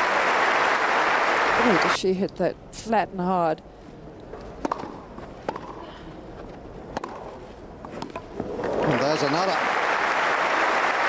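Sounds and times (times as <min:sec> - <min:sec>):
crowd applause: 0:00.0 - 0:02.0, 0:08.7 - 0:11.0
racket striking tennis ball: 0:04.4 - 0:05.8, 0:06.9 - 0:08.4.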